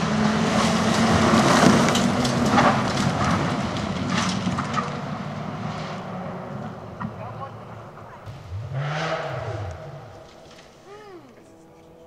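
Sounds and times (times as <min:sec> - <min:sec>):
engine revving: 0:00.0 - 0:12.0
rally car engine pulling away: 0:00.0 - 0:12.0.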